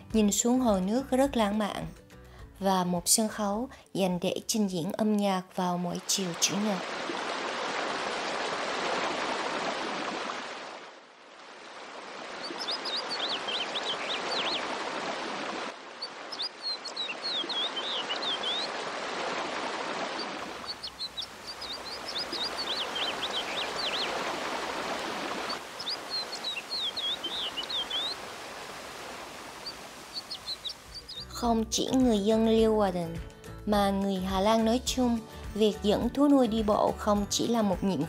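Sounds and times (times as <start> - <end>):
fountain water splashing: 6.0 - 10.8, 11.4 - 31.3
songbird chirping: 12.2 - 18.9, 19.6 - 33.2.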